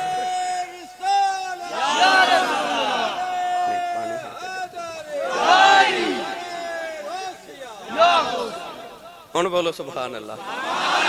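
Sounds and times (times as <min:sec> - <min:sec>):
crowd of men shouting: 0:00.0 - 0:09.3, 0:10.4 - 0:11.0.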